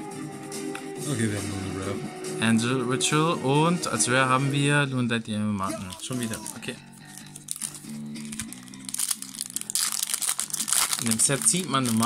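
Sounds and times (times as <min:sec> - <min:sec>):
foil wrapper crinkling: 0:05.7 - 0:12.0.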